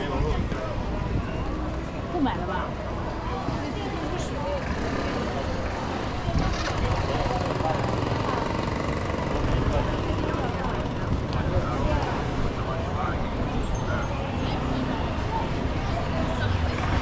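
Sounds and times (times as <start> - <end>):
chatter of passers-by: 0.0 - 17.0
low rumble of traffic: 0.0 - 17.0.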